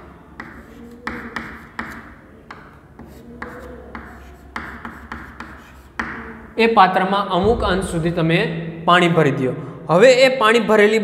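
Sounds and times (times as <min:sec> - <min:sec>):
chalk tapping on board: 0:00.4 - 0:06.3
chalk scratching on chalkboard: 0:00.4 - 0:06.5.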